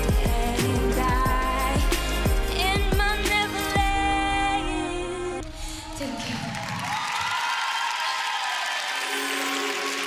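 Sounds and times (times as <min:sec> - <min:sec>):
audience applauding and cheering: 0:05.4 - 0:10.0.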